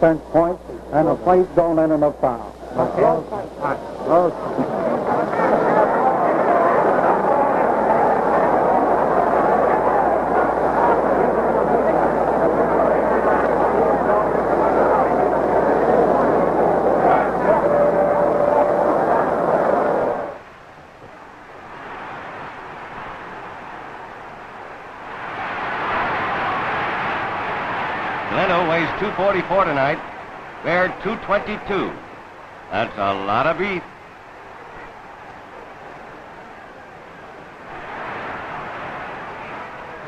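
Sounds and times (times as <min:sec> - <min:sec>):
low mains hum: 0:00.0 - 0:40.0
stadium crowd roar: 0:01.2 - 0:20.6, 0:21.2 - 0:40.0.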